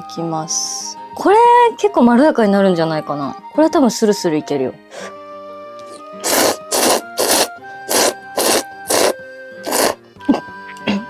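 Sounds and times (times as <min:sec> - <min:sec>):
person slurping noodles: 0:05.9 - 0:10.5.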